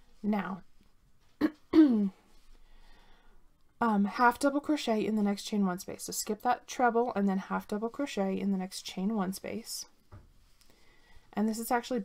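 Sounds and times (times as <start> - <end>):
woman clearing her throat: 1.4 - 2.2.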